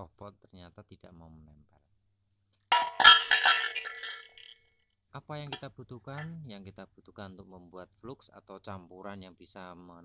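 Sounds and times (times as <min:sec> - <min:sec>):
tools clattering into tray: 0:02.7 - 0:04.5.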